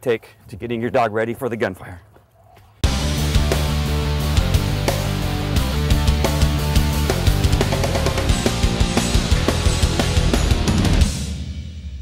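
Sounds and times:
rock music with drums: 2.8s - 12.0s.

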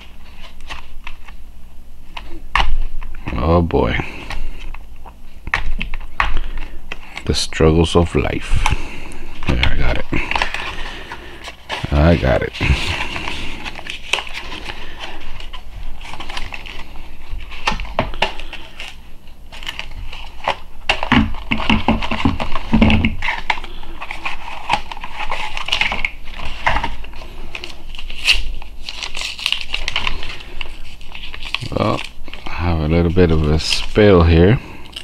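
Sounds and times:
packaging crinkling and rustling: 8.3s - 35.0s.

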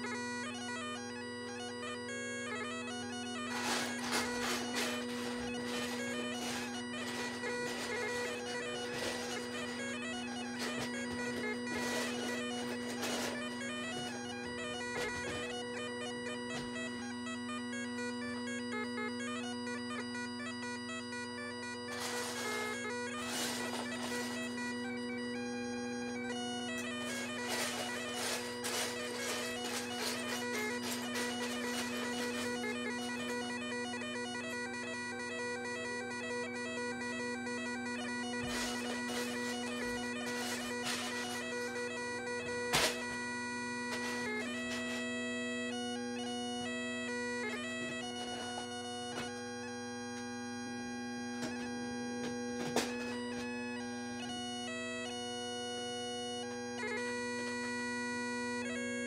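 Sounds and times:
bagpipes playing: 0.0s - 59.0s.

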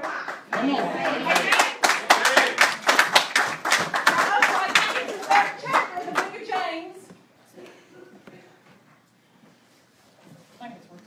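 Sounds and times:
hands clapping in rhythm: 0.0s - 6.8s.

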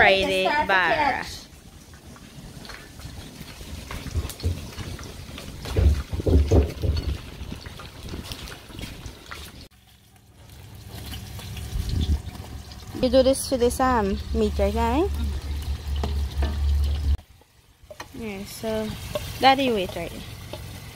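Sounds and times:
hot oil sizzling: 0.0s - 20.9s
low thumps: 4.0s - 8.2s, 11.8s - 17.2s
metal ladle stirring in pot: 19.0s - 20.9s.

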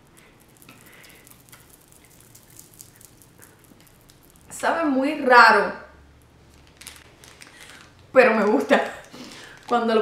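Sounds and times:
chewing crunchy candy: 0.0s - 4.6s, 6.5s - 9.8s.

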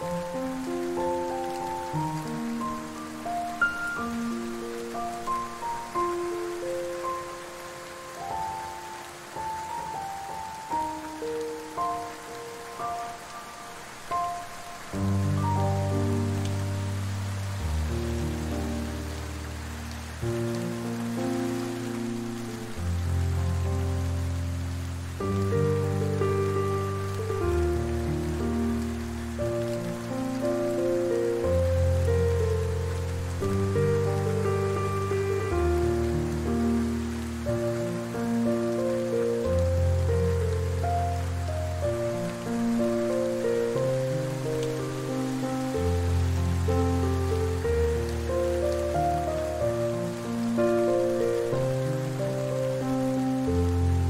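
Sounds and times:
soft piano music: 0.0s - 54.0s
steady rain: 0.0s - 54.0s.

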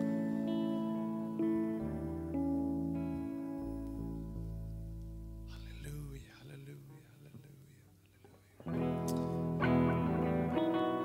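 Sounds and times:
electric guitar: 0.0s - 6.1s, 8.1s - 11.0s.

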